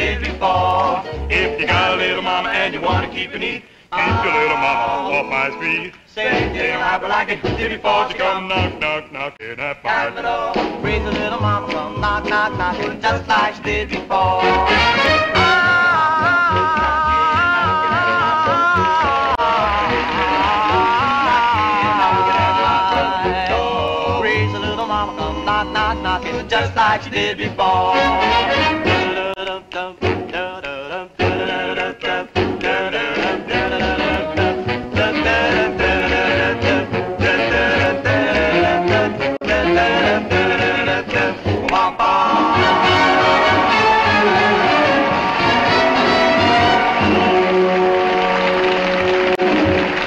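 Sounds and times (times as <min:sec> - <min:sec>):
vocal group singing rock and roll: 0:00.0 - 0:47.8.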